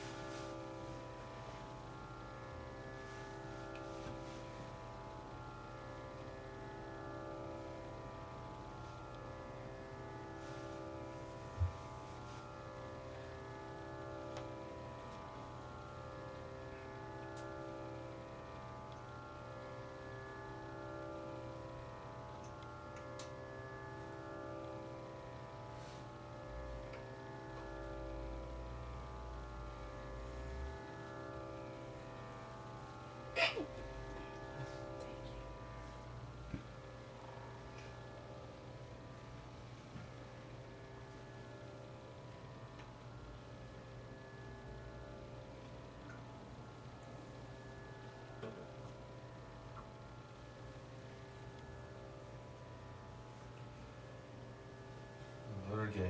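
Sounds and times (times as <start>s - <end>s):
harmonium chord drone: 0.0s - 56.0s.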